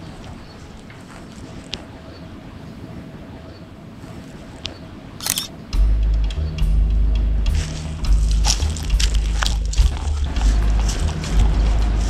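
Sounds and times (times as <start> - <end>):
camera shutter click: 5.2 - 5.6
music with heavy bass line: 5.8 - 12.0.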